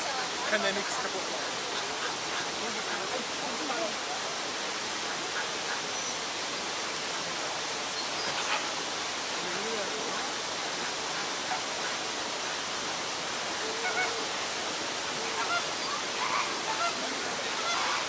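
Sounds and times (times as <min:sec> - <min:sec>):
running water: 0:00.0 - 0:18.0
flamingos honking: 0:08.2 - 0:08.9, 0:13.5 - 0:18.0.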